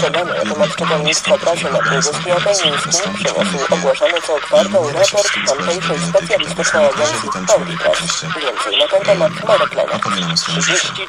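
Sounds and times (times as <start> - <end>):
newsreader speaking: 0.0 - 11.0.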